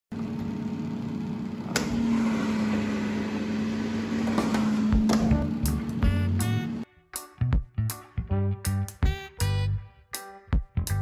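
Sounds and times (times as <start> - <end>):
air fryer fan hum: 0.1 - 6.8.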